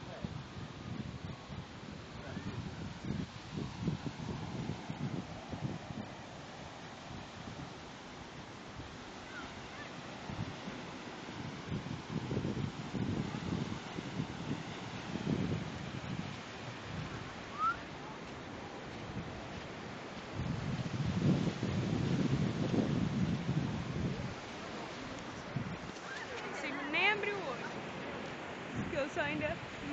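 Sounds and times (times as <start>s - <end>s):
wind buffeting microphone: 0.0s - 17.9s, 18.5s - 29.9s.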